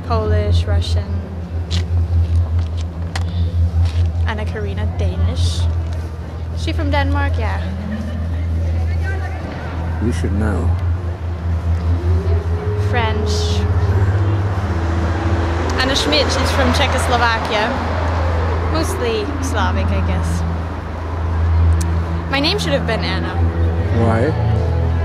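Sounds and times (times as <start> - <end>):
woman speaking: 0.0 - 1.3, 4.2 - 5.7, 6.6 - 9.2, 12.8 - 13.7, 15.7 - 17.9, 18.7 - 20.4, 22.3 - 23.4
vehicle engine rumbling nearby: 0.0 - 25.0.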